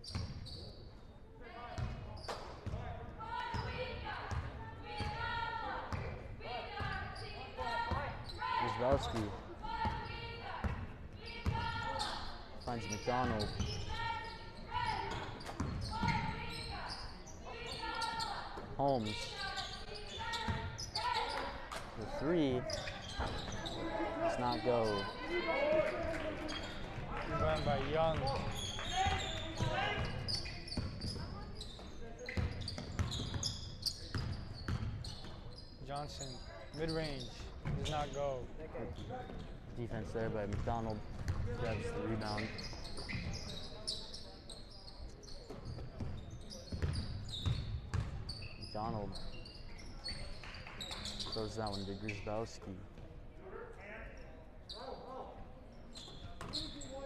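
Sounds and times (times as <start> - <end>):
sneakers squeaking: 0.0 - 1.1, 1.8 - 52.6, 54.2 - 57.0
voices in a gym: 0.0 - 57.0.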